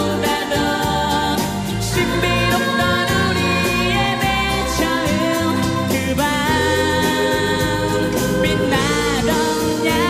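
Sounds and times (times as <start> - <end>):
instrumental accompaniment: 0.0 - 10.0
man singing lead: 0.0 - 10.0
women singing backing vocals: 0.0 - 10.0.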